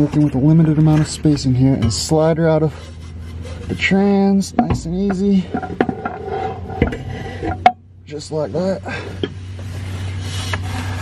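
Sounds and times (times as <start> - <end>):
metal scraping and clinking: 0.0 - 7.8.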